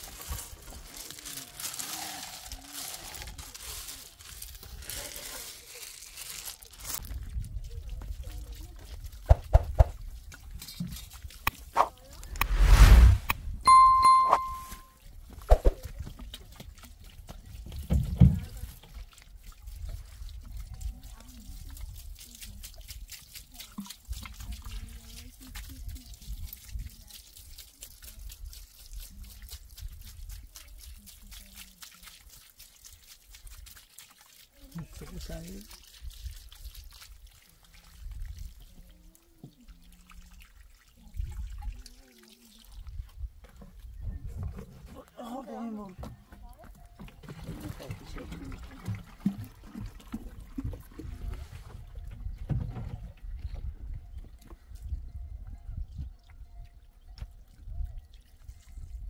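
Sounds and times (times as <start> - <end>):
water splashing on stone and gravel: 0.0 - 12.3, 15.1 - 43.1, 47.0 - 51.4.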